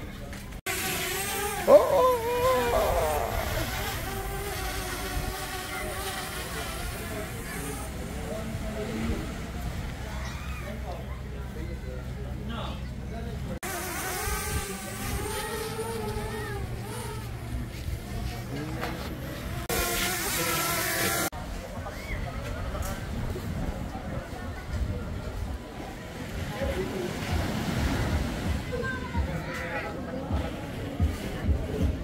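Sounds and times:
quadcopter drone propellers buzzing: 0:00.7 - 0:09.6, 0:13.6 - 0:21.3
wind buffeting microphone: 0:22.1 - 0:25.9
small waves breaking on sand: 0:26.0 - 0:28.8.

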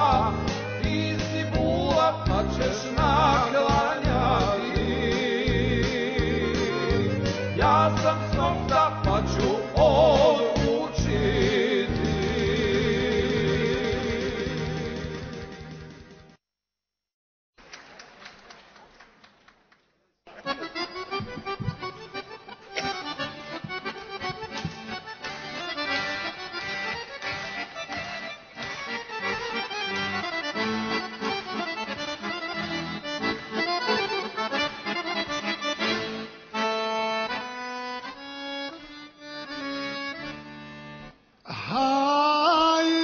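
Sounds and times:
accordion melody: 0:00.0 - 0:16.4, 0:20.3 - 0:41.4.

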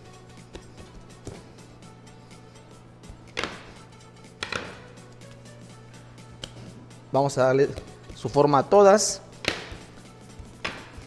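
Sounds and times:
quiet background music: 0:00.0 - 0:11.0
steady low hum: 0:00.0 - 0:11.0.

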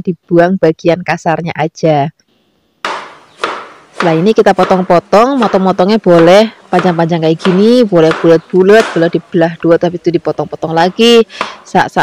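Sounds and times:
knife chopping on cutting board: 0:02.8 - 0:09.2.

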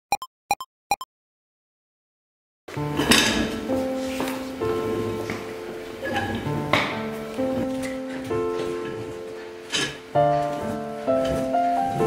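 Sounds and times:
background music: 0:02.7 - 0:12.0.

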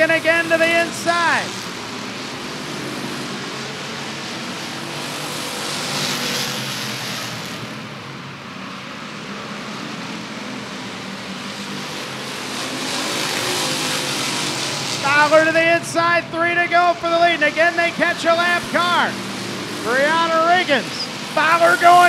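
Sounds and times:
race car engines: 0:00.0 - 0:22.0.

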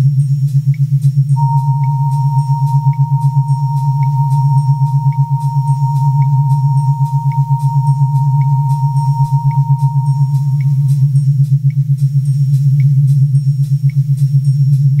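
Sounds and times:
high sine-like tone: 0:01.3 - 0:15.0
faint ticking: 0:01.4 - 0:11.8
throbbing synth bass drone: 0:01.4 - 0:12.6.

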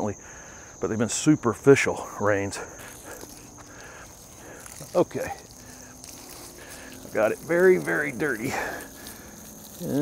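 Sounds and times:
insects singing: 0:00.0 - 0:10.0.

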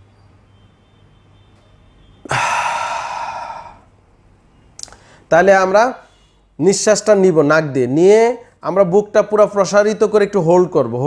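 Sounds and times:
man breathing out: 0:02.3 - 0:04.0.

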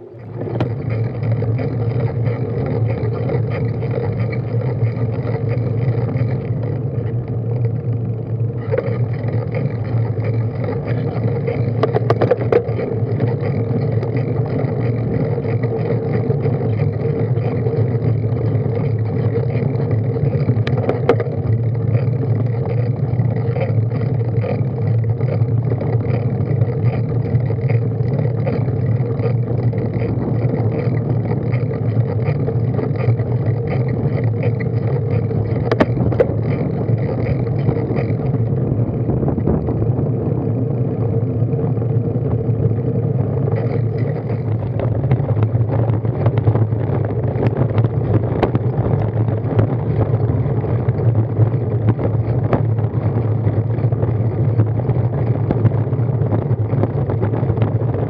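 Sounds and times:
bicycle tyres and drivetrain rumble: 0:00.0 - 0:58.0.

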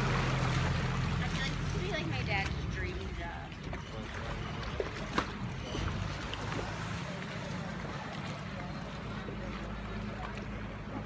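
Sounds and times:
boat traffic hum: 0:00.0 - 0:11.0
faint voices: 0:01.2 - 0:11.0.

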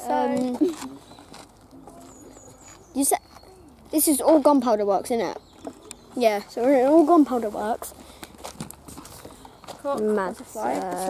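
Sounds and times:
child's voice: 0:00.0 - 0:00.8, 0:09.8 - 0:11.0.

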